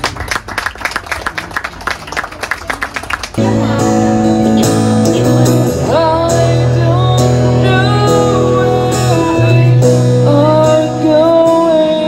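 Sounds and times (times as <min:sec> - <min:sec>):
audience clapping: 0:00.0 - 0:03.7
acoustic guitar strumming: 0:03.4 - 0:12.0
man singing: 0:05.1 - 0:12.0.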